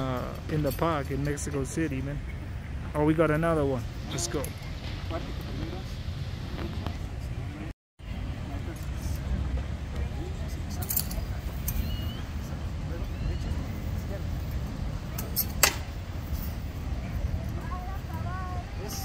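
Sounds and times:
low outdoor rumble: 0.0s - 19.0s
faint clinks: 10.7s - 12.2s.

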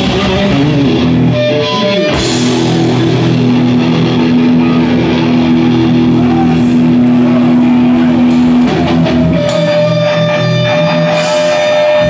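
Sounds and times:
distorted electric guitar note: 0.0s - 12.0s.

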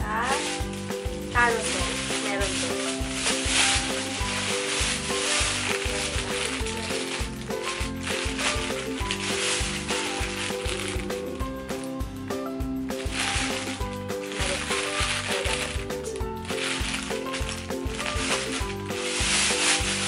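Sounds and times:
background music with steady beat: 0.0s - 20.0s
plastic bags crinkling: 0.0s - 20.0s.

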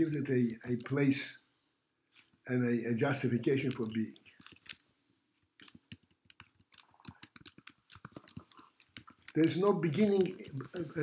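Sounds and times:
faint small clicks and ticks: 2.1s - 2.5s, 3.2s - 11.0s.

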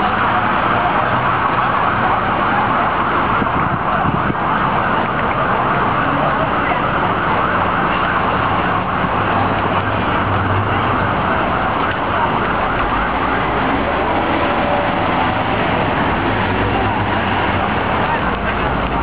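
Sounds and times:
people moving about: 0.0s - 19.0s
road traffic: 0.0s - 19.0s.

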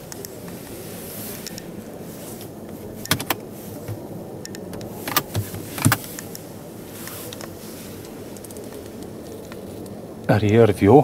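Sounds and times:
armrest lid plastic clicks: 3.1s - 4.0s, 4.6s - 6.1s
armrest lid thump: 3.1s - 4.0s, 4.8s - 6.0s.

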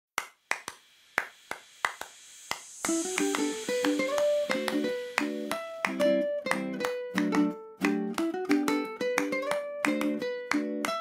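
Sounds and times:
finger snaps: 0.2s - 11.0s
plucked instruments music: 2.8s - 11.0s.

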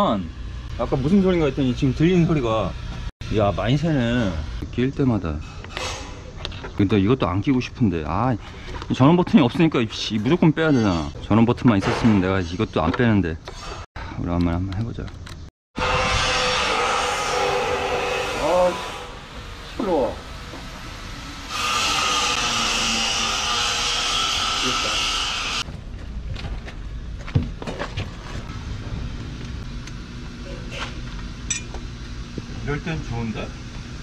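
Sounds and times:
loud construction machine noise: 15.8s - 25.6s.

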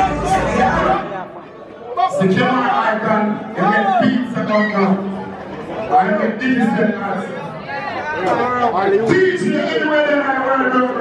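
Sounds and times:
low bass music: 0.0s - 1.0s
crowd talking and calling out: 0.0s - 11.0s.

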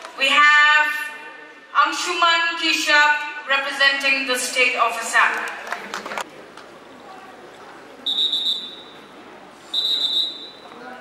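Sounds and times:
whistle blasts: 8.0s - 9.1s, 9.7s - 10.7s.

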